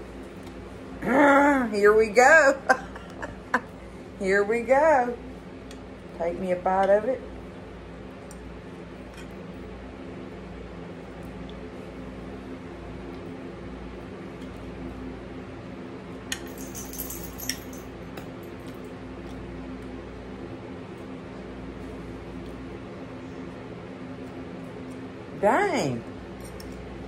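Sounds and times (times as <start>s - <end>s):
low room tone hum: 0.0s - 27.0s.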